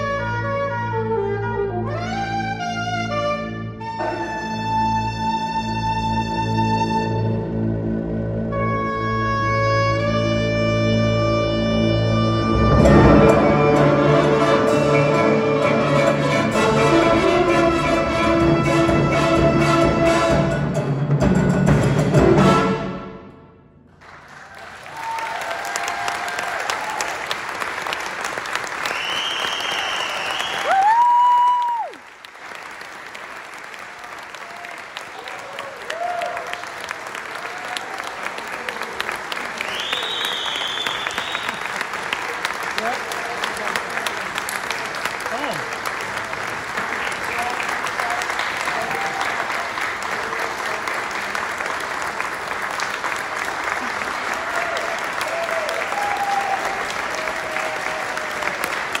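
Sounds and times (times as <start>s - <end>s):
audience applauding: 24.0s - 59.0s
crowd cheering: 24.0s - 59.0s
loud high whoop: 24.6s - 27.2s, 29.0s - 32.0s, 34.4s - 36.7s, 48.7s - 49.6s, 54.3s - 58.8s.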